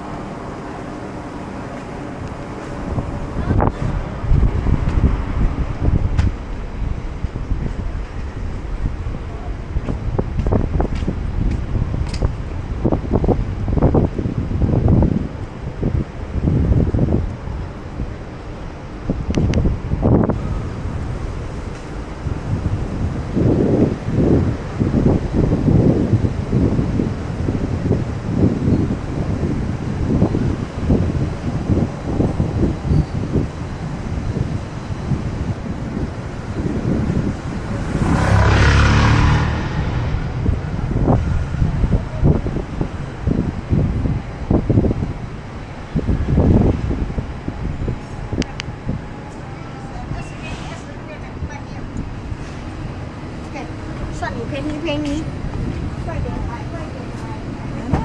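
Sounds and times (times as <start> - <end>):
city street noise: 0.0 - 58.0
wind buffeting microphone: 0.0 - 58.0.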